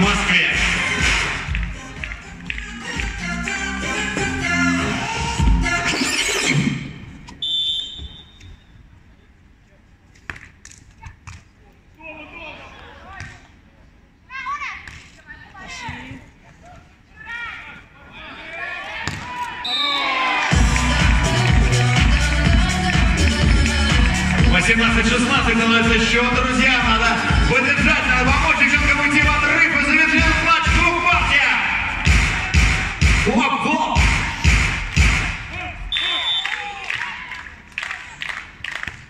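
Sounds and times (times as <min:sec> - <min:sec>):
loud stadium music: 0:00.0 - 0:07.2, 0:20.4 - 0:36.4
referee's whistle: 0:07.4 - 0:08.8, 0:19.6 - 0:20.2, 0:35.9 - 0:36.7
players calling: 0:15.6 - 0:34.6, 0:35.4 - 0:38.2.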